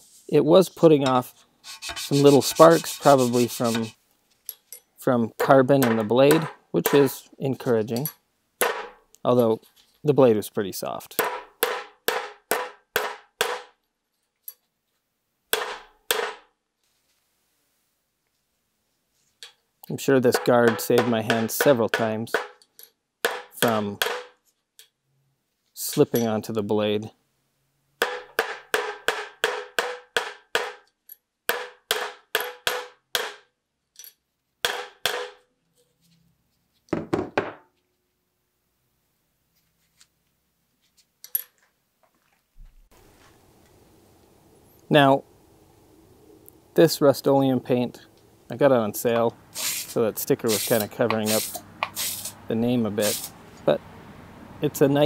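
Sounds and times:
hammer striking steel punch: 5.4s - 7.1s, 8.6s - 9.0s, 11.2s - 13.7s, 15.5s - 16.5s, 20.3s - 22.6s, 23.2s - 24.4s, 28.0s - 30.8s, 31.5s - 33.5s, 34.6s - 35.5s.

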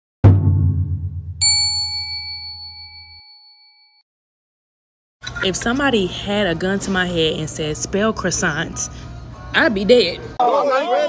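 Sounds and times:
deep bass hit: 0.2s - 1.4s
bright bell-like ding: 1.4s - 4.0s.

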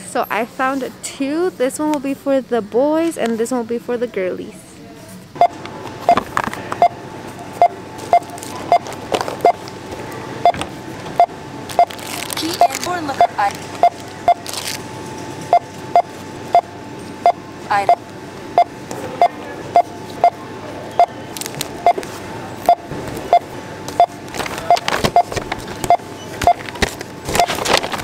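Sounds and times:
barcode scanner beeping: 7.6s - 9.6s, 11.2s - 14.7s, 15.5s - 18.0s, 21.0s - 21.2s, 22.6s - 26.7s
packaging rustling and clattering: 11.9s - 12.9s, 24.3s - 28.0s.

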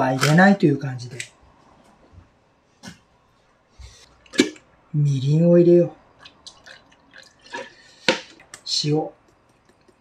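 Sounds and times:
liquid dripping into a bowl: 6.2s - 10.0s.

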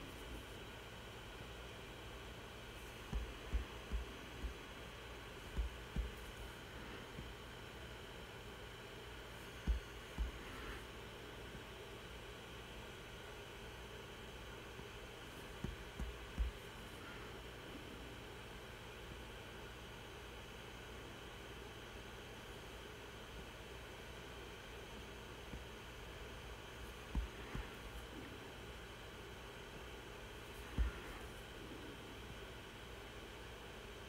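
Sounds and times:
computer hiss and hum: 0.0s - 34.0s.

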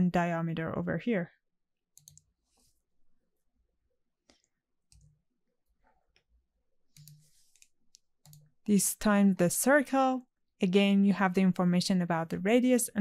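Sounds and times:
computer mouse clicks: 2.0s - 2.6s, 4.2s - 5.2s, 6.9s - 8.6s.

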